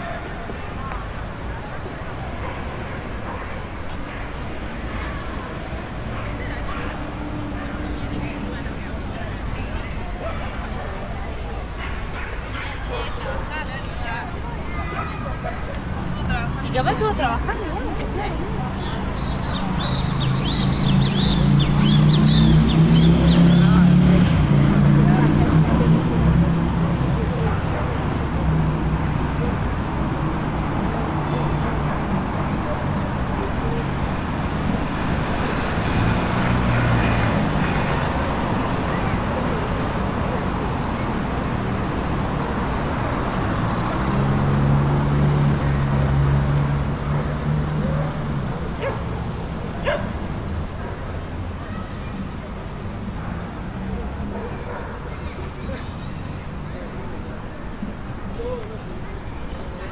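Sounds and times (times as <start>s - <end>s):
people's voices: 0.0s - 59.9s
street traffic: 0.0s - 59.9s.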